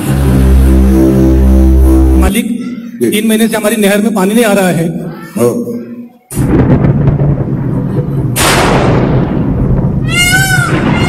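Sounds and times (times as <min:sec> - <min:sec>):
thunder rumble sound effect: 0:06.3 - 0:11.0.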